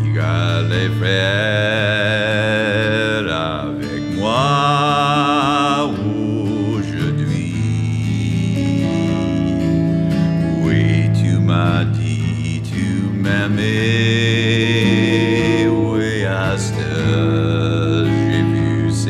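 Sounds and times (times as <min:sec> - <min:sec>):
acoustic guitar: 0:00.0 - 0:19.0
man singing with vibrato: 0:00.0 - 0:19.0.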